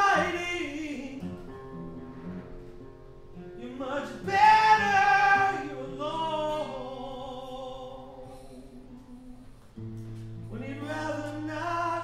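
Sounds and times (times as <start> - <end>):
acoustic guitar ringing: 0.0 - 12.0.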